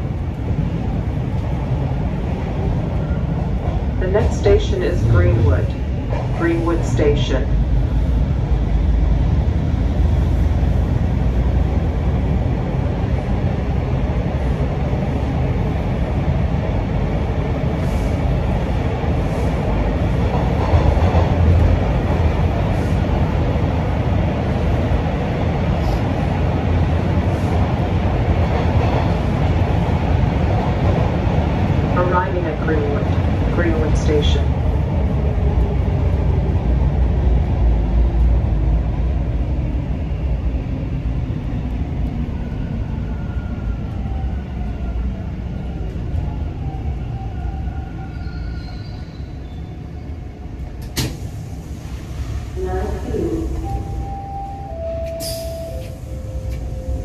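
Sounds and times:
subway train rumble: 0:00.0 - 0:57.0.

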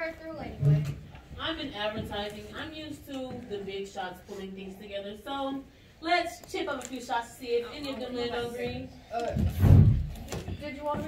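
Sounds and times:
heavy deep thump and rumble: 0:09.4 - 0:10.2.

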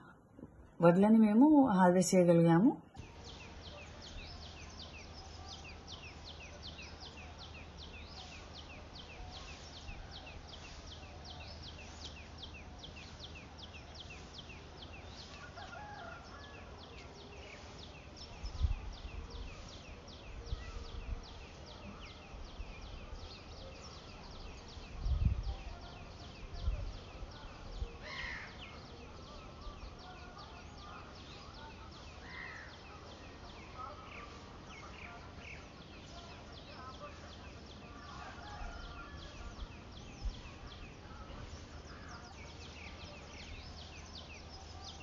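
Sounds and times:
birds chirping: 0:00.0 - 0:45.0
wind buffeting microphone: 0:18.3 - 0:23.5, 0:24.1 - 0:28.1.

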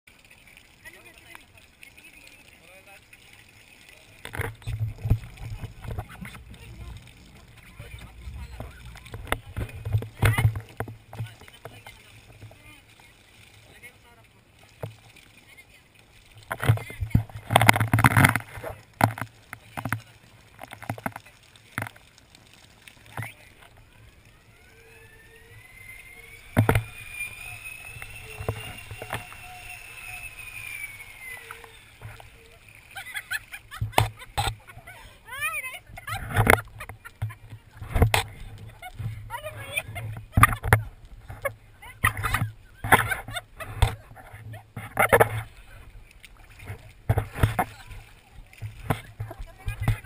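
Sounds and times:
faint voices: 0:00.8 - 0:50.0
thin rising whine: 0:04.2 - 0:11.5, 0:23.1 - 0:34.5
deep rumbling: 0:04.5 - 0:11.4.

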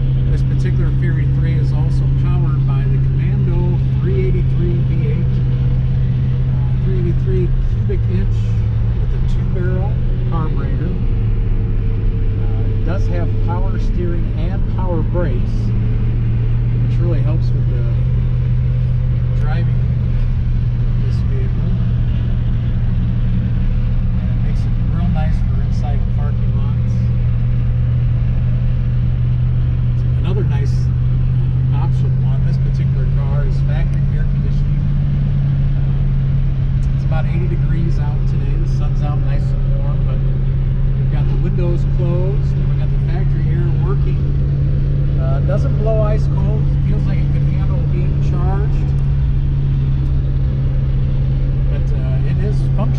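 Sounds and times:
car engine drone: 0:00.0 - 0:52.9
road noise: 0:00.0 - 0:52.9.

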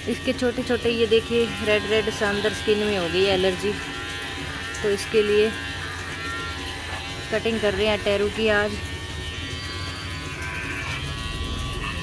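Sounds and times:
electric hair clipper buzzing: 0:00.0 - 0:12.0.

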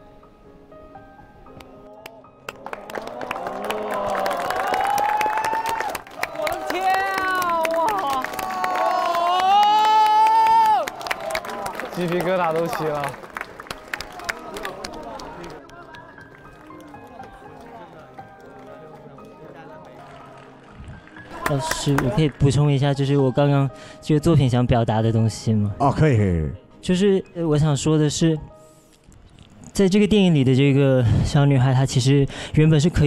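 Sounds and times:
soft music with held tones: 0:00.0 - 0:02.6, 0:15.6 - 0:30.9
performance music: 0:01.5 - 0:22.6
audience applause and cheering: 0:02.0 - 0:22.6
high shouts: 0:03.3 - 0:11.7.

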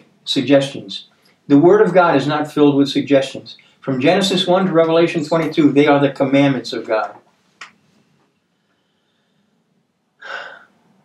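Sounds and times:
sharp intake of breath: 0:10.2 - 0:10.8.

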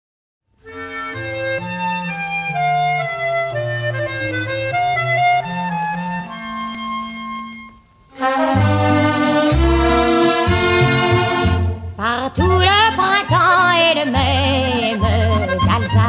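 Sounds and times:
accordion melody over bass notes: 0:00.6 - 0:16.0.

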